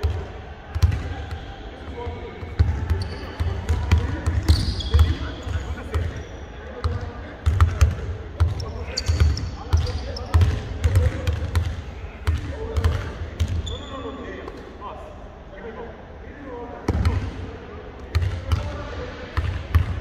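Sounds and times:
basketballs bouncing on hardwood: 0:06.8 - 0:13.7.

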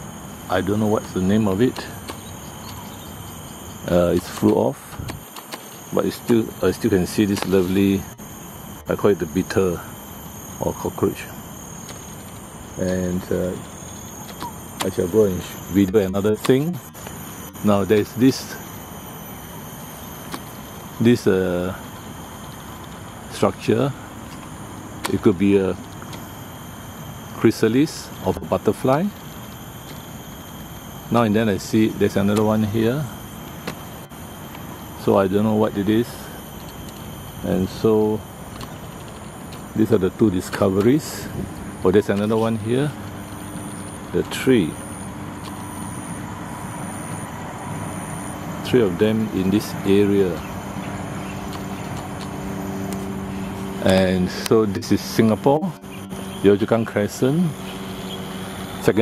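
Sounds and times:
distant road traffic hum: 0:00.0 - 0:59.0
high steady whine: 0:00.0 - 0:59.0
insects shrilling: 0:00.0 - 0:59.0.

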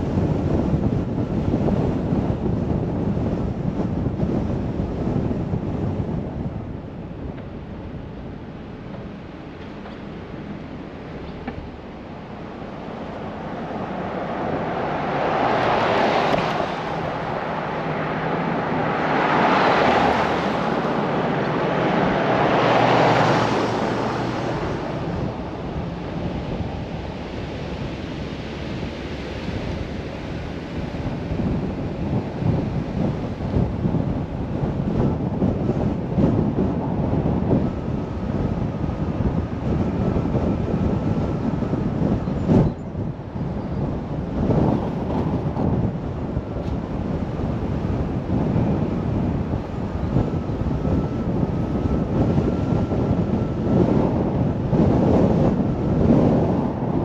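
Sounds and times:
car road noise: 0:00.0 - 0:57.0
wind buffeting microphone: 0:00.0 - 0:57.0
van passing: 0:00.2 - 0:57.0.

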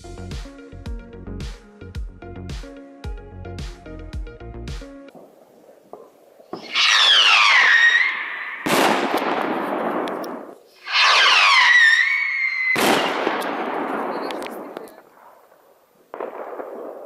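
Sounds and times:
whistling rockets: 0:06.5 - 0:15.0.

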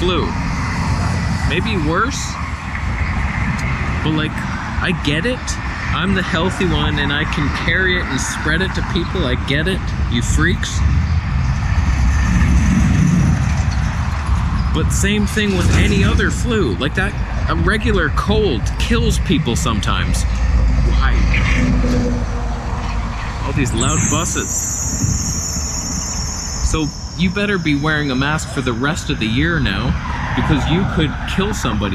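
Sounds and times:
heavy road traffic: 0:00.0 - 0:31.9
large vehicle engine rumbling: 0:00.0 - 0:31.9.

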